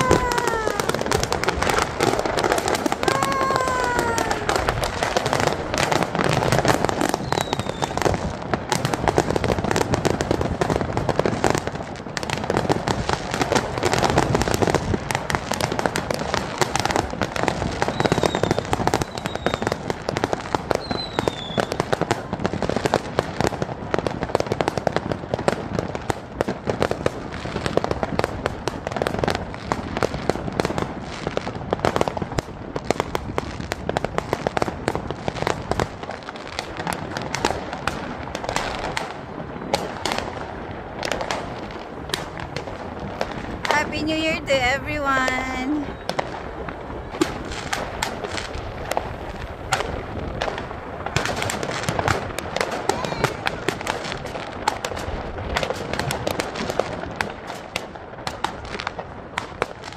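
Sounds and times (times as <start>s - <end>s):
falling whistles of fireworks: 0.0s - 44.4s, 45.1s - 59.9s
fireworks bangs and crackles: 0.0s - 59.9s.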